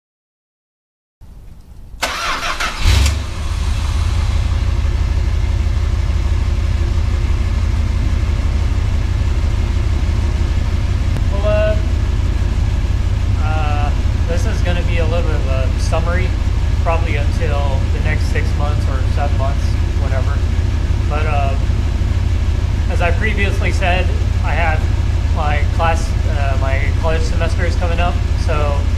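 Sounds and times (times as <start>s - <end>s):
car engine cranking and idling: 1.3s - 28.9s.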